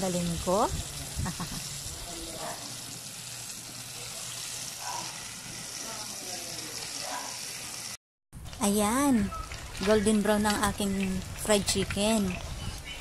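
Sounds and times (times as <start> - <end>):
chicken deep-frying in oil: 0.0 - 13.0.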